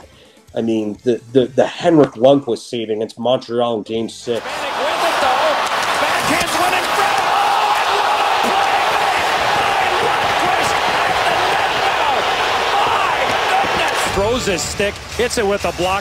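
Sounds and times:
arena crowd roaring: 0:04.4 - 0:14.8.

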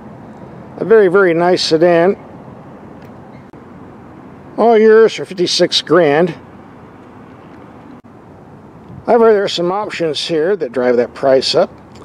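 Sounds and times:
low outdoor background noise: 0:00.0 - 0:12.0.

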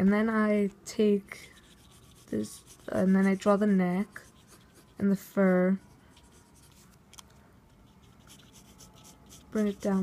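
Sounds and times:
pencil scratching on paper: 0:01.4 - 0:06.9, 0:07.8 - 0:10.0.

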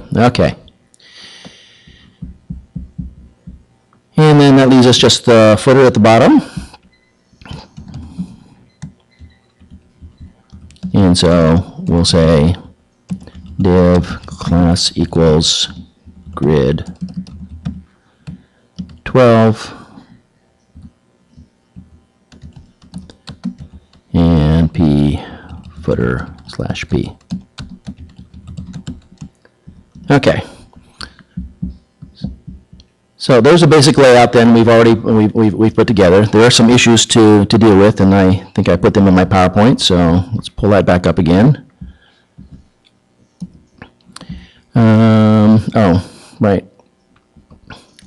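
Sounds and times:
soft dull low thumps: 0:01.8 - 0:03.8, 0:07.8 - 0:11.0, 0:20.7 - 0:24.1, 0:27.3 - 0:33.1, 0:41.7 - 0:42.7
keyboard typing: 0:06.8 - 0:12.0, 0:13.1 - 0:14.8, 0:16.0 - 0:19.1, 0:20.7 - 0:24.2, 0:25.3 - 0:30.2.

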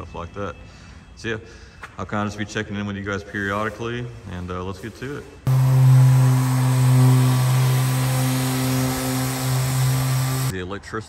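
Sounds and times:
orbital sander running: 0:05.5 - 0:10.5.

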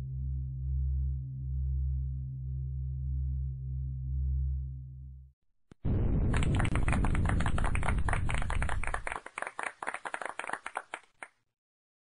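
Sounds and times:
applause: 0:06.2 - 0:11.4.

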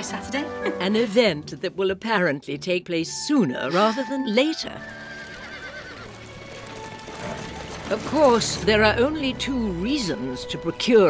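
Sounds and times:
film score music: 0:00.0 - 0:11.0
horse whinnying: 0:04.8 - 0:08.0.

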